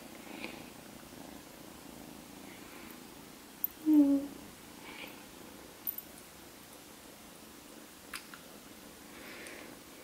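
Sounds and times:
kitten purring: 0:00.0 - 0:05.7
woman humming: 0:03.8 - 0:04.4.

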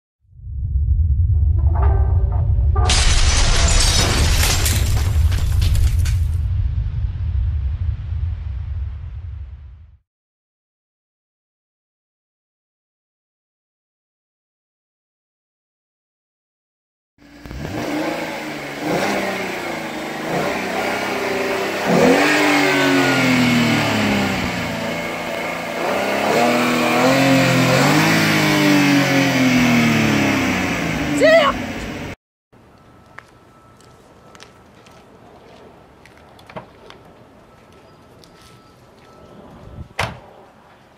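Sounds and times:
deep low rumble: 0:00.2 - 0:10.0
high rising sound: 0:00.3 - 0:04.1
loud shattering crash: 0:01.3 - 0:09.9
breaking debris: 0:02.8 - 0:06.6
car engine revving: 0:17.3 - 0:32.2.

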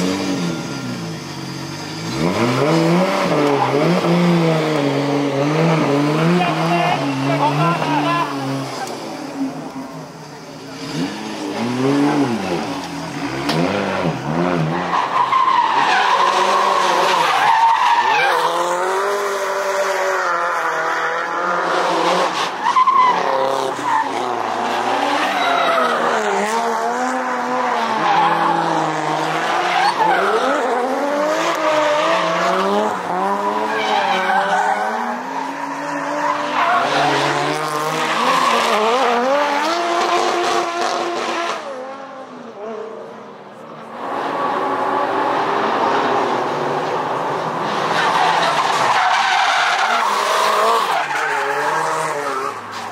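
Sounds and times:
car engines revving: 0:00.0 - 0:52.9
tyres skidding and squealing: 0:00.0 - 0:52.9.

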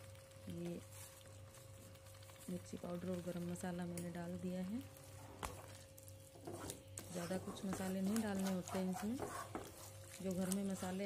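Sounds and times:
scraping and squelching of greens: 0:00.0 - 0:03.6, 0:04.4 - 0:11.0.

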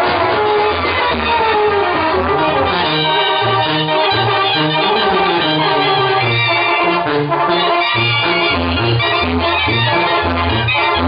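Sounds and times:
sustained trumpets and trombones: 0:00.0 - 0:11.0
tuba bass line: 0:00.0 - 0:11.0.

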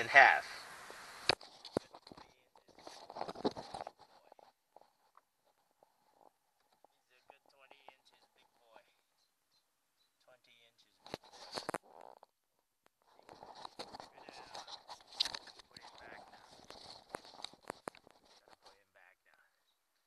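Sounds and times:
rustling and clicks: 0:00.8 - 0:09.1, 0:10.8 - 0:20.0.

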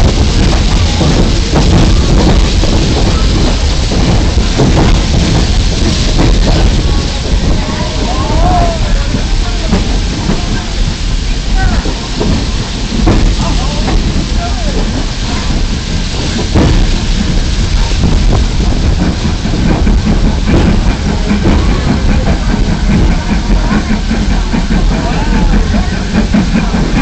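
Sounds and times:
people's voices: 0:00.0 - 0:27.0
train rumbling: 0:00.0 - 0:27.0.

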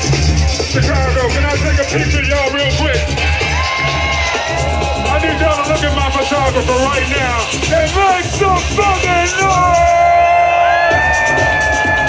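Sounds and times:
house music with held high tones: 0:00.0 - 0:12.0
crowd cheering and whooping: 0:03.1 - 0:06.5, 0:08.9 - 0:12.0.

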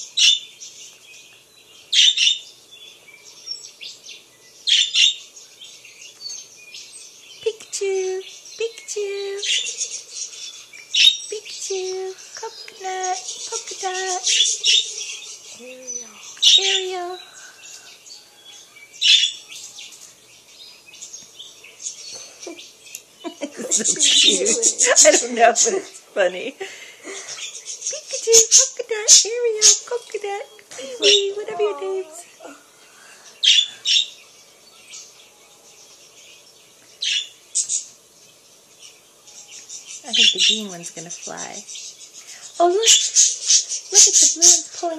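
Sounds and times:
budgerigars chirping and chattering: 0:00.0 - 0:44.9
soft bird twittering: 0:00.0 - 0:44.9.

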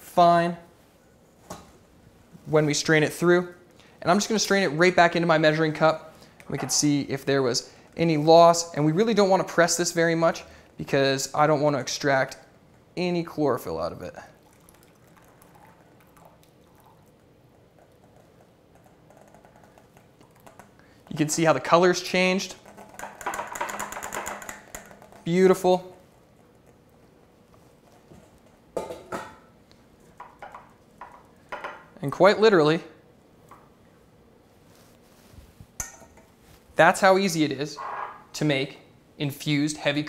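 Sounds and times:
cream trickling and dripping: 0:12.3 - 0:28.8.

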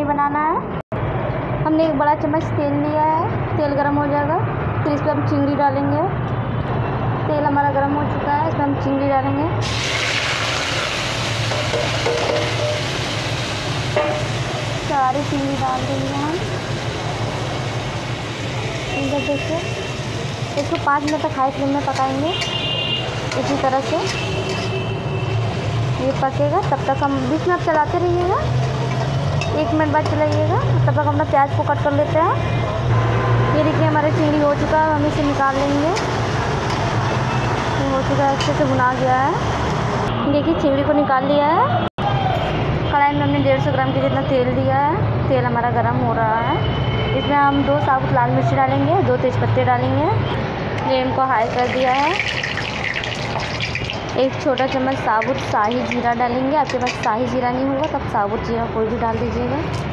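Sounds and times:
prawns sizzling in hot oil: 0:09.6 - 0:29.5, 0:51.3 - 0:57.1.

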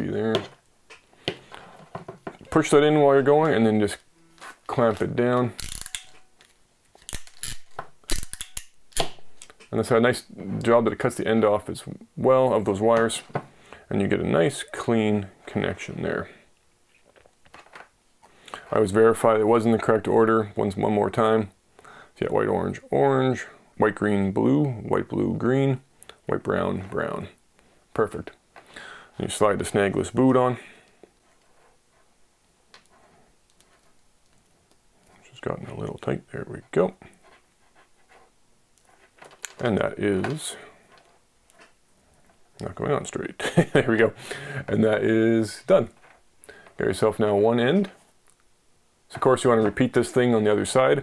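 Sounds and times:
light rubbing on cable: 0:01.4 - 0:06.2, 0:29.2 - 0:42.9.

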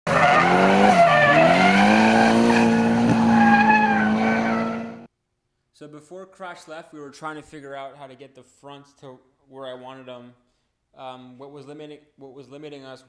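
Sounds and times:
tyres squealing: 0:00.1 - 0:05.0
car engine at high revs: 0:00.1 - 0:05.1.

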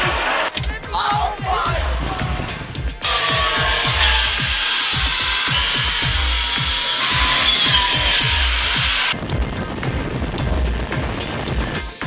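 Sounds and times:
background music with beat: 0:00.0 - 0:12.0
zip-wire trolley whirring on cable: 0:03.0 - 0:09.2.

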